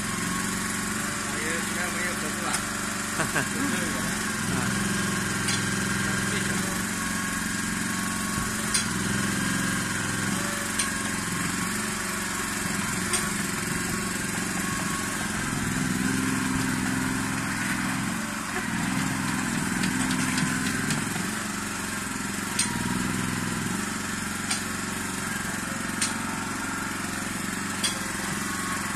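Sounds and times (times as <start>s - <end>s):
small excavator engine running: 0.0s - 28.9s.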